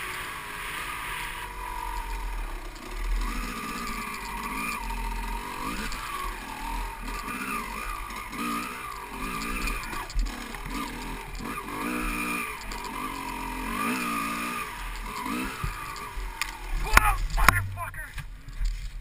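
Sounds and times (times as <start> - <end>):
motorcycle engine revving: 0.0 - 18.9.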